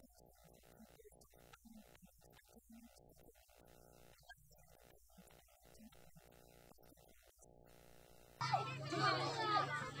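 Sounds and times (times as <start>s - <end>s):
children shouting while playing: 8.4s - 10.0s.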